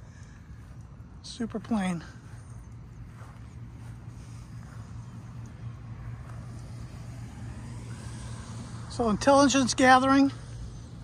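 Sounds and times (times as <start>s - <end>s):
faint outdoor background noise: 0.0s - 11.0s
low mechanical hum: 0.0s - 11.0s.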